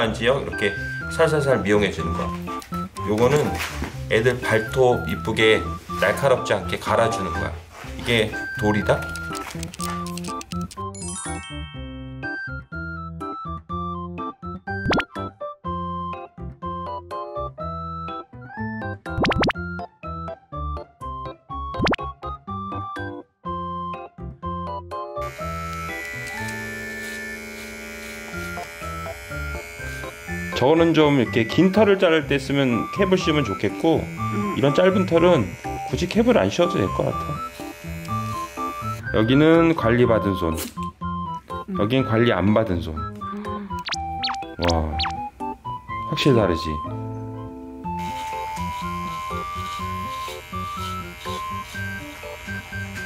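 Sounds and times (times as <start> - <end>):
background music: 0.0 - 53.0
electric hair trimmer buzzing: 25.2 - 39.2, 47.8 - 53.0.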